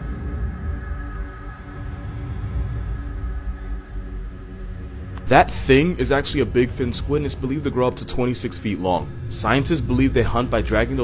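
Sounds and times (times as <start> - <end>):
low rumble: 0.0 - 11.0
steady held drone tones: 0.0 - 11.0.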